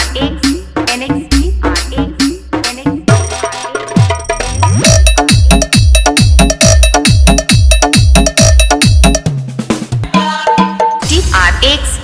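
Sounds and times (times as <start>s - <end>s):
heavy kick drum: 2.9s - 11.4s
cowbell-like synth hits: 3.1s - 9.3s.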